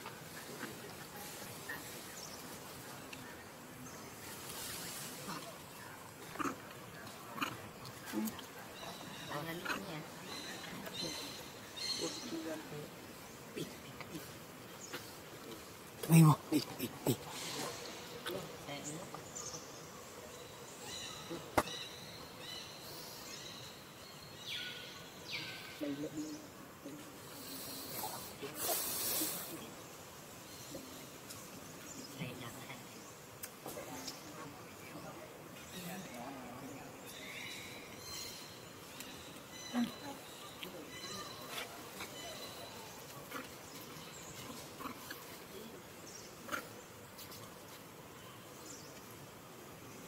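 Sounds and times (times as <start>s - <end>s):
hissing rustles: 0.0s - 6.4s, 27.0s - 32.0s
steady background hiss: 0.0s - 50.0s
macaques calling: 16.0s - 18.5s.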